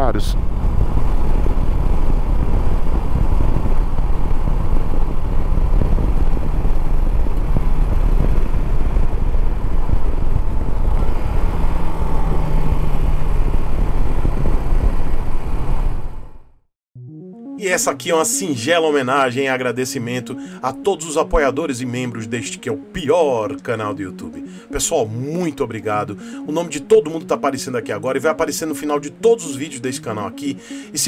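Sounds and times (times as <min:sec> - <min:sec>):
wind rushing over microphone: 0:00.0 - 0:16.4
motorcycle engine running: 0:00.4 - 0:15.6.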